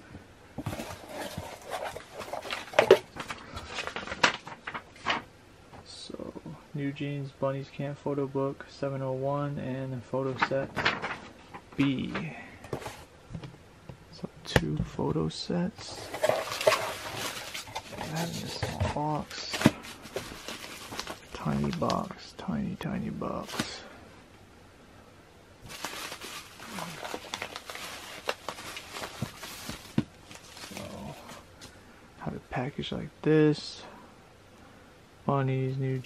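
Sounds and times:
plastic rubbing against cardboard: 0:00.6 - 0:03.2, 0:15.9 - 0:21.5
bubble wrap crinkling: 0:19.4 - 0:22.0, 0:25.6 - 0:31.4.

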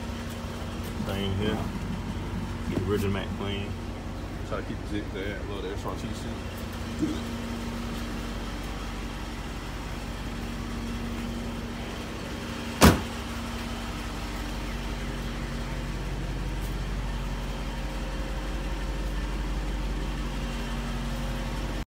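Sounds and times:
low steady hum: 0:00.0 - 0:21.8
car door shutting: 0:12.8 - 0:13.3.

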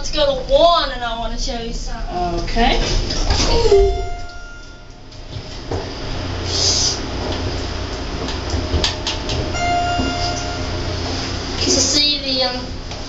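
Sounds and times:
elevator rumble: 0:00.0 - 0:13.0
elevator electronic tone: 0:03.4 - 0:05.6, 0:09.5 - 0:12.3.

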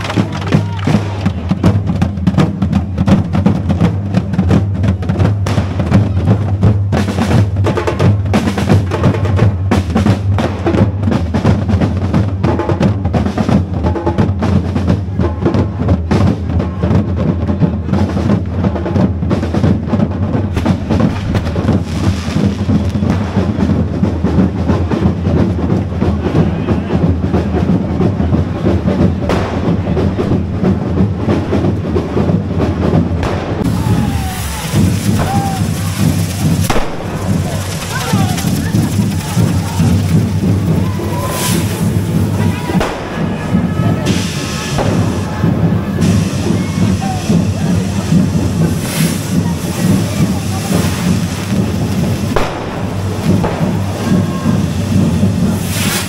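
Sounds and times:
street drum troupe playing: 0:00.0 - 0:56.0.

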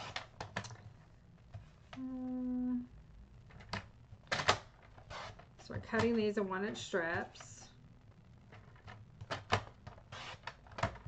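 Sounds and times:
person humming a note: 0:02.0 - 0:02.9.

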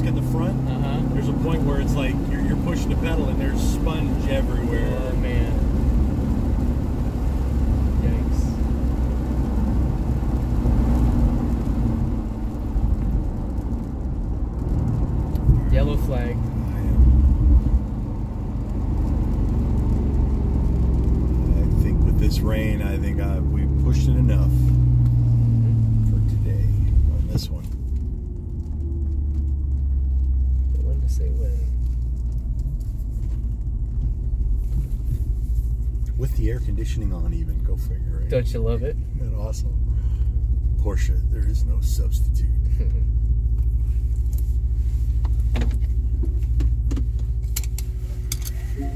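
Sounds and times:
car engine and road noise: 0:00.0 - 0:48.9.

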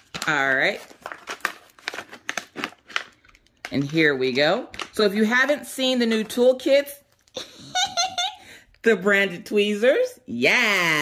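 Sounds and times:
tool pouch crinkling and rustling: 0:00.0 - 0:04.1.

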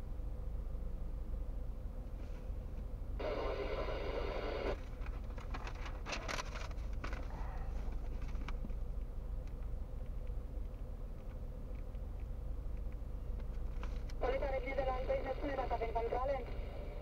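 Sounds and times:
loud steady pitched tone: 0:03.2 - 0:04.8.

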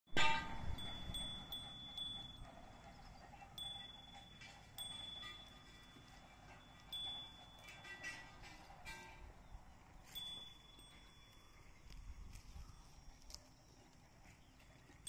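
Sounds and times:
metallic chime notes: 0:00.1 - 0:09.0, 0:10.0 - 0:11.6.

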